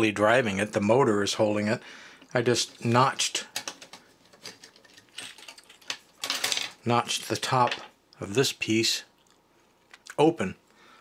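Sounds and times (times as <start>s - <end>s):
plastic parts clicking and rattling: 2.6s - 7.9s.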